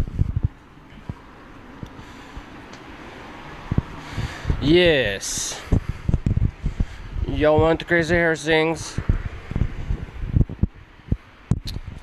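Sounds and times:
wind buffeting microphone: 0.0 - 12.0
microphone handling thumps: 5.6 - 7.8, 9.0 - 12.0
sharp clicks: 11.5 - 11.8.

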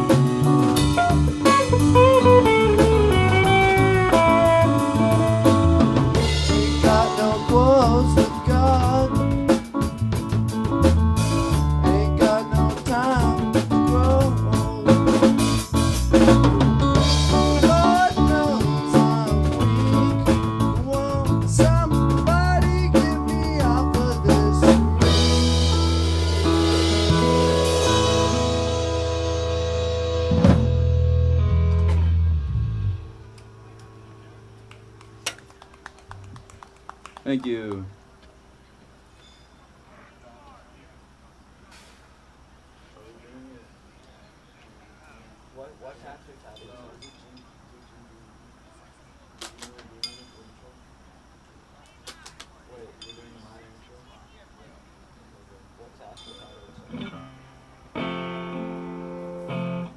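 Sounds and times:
busy drumming: 0.0 - 31.2
live rock band playing: 0.0 - 36.9, 56.8 - 59.9
person singing: 3.8 - 9.6, 11.6 - 25.5.

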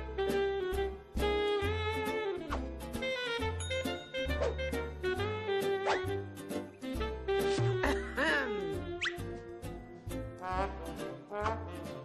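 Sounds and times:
cartoon music with bass: 0.0 - 12.0.

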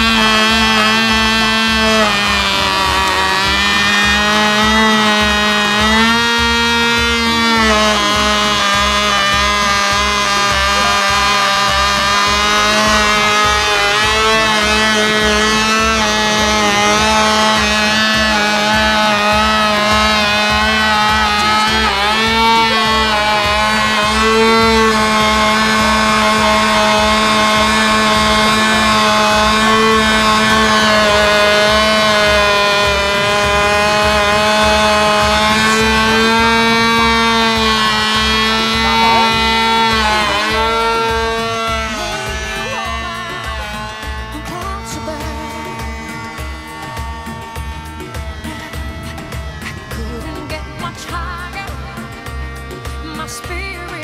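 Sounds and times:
model aircraft engine buzzing: 0.0 - 54.0.

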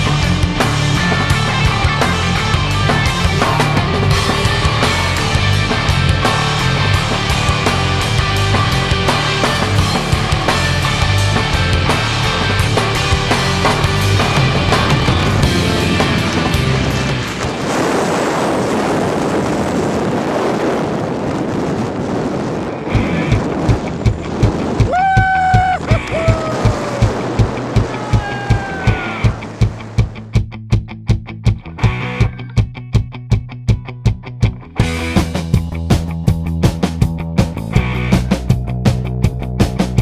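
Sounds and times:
steady drum beat: 0.0 - 17.6, 22.9 - 40.0
rock music: 0.0 - 18.4, 22.1 - 40.0.

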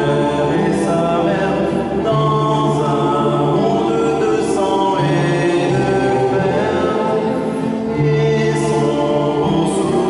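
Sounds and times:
mixed choir singing chords: 0.0 - 10.0.

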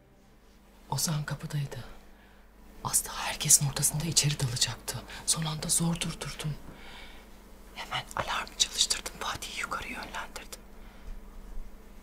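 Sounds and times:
person speaking: 2.8 - 6.6.

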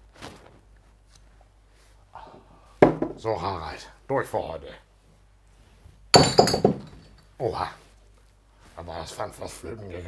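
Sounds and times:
glass clinking and breaking: 6.2 - 7.2.

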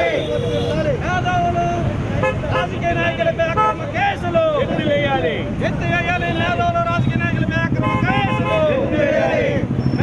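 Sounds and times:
crowd voices: 0.0 - 10.0
street traffic: 0.0 - 10.0
vehicle horns blasting: 3.5 - 3.9, 6.2 - 8.8.

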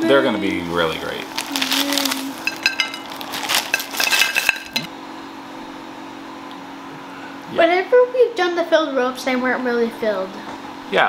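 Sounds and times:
plastic wrapper crinkling: 1.0 - 4.9.

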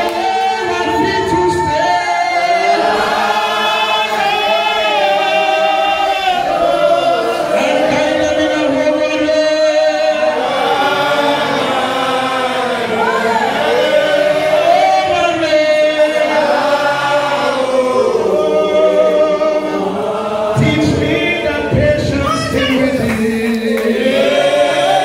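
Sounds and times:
man singing into a microphone: 0.0 - 2.8, 7.5 - 10.4, 20.5 - 24.0
congregation singing: 0.0 - 25.0.

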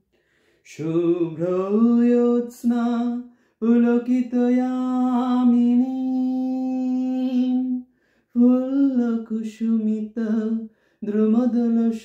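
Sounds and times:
man singing unaccompanied: 0.6 - 12.0.

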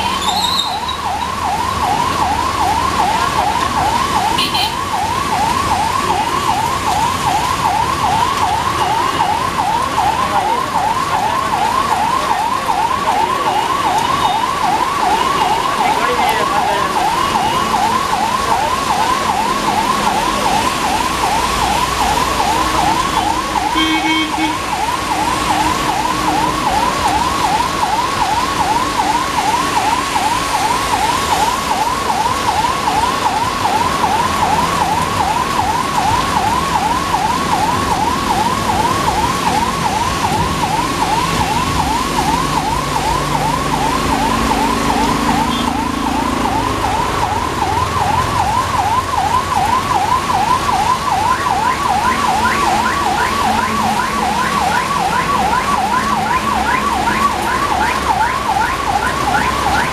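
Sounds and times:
electronic siren warbling: 0.0 - 59.9.

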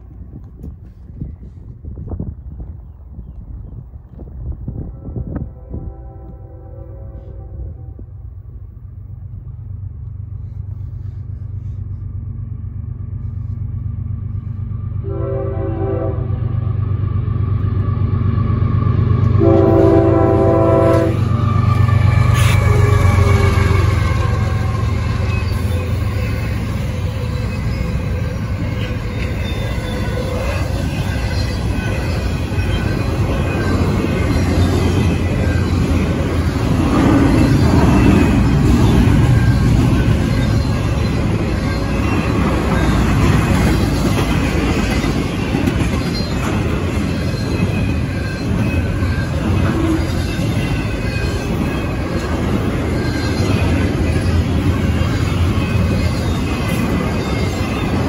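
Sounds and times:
diesel locomotive engine droning: 0.0 - 58.0
freight train wheels rumbling: 0.0 - 58.0.

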